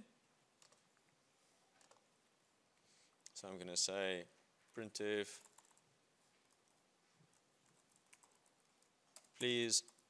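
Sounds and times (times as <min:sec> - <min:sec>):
computer keyboard typing: 0:00.6 - 0:00.8, 0:01.8 - 0:02.1, 0:05.3 - 0:05.8, 0:06.4 - 0:10.0.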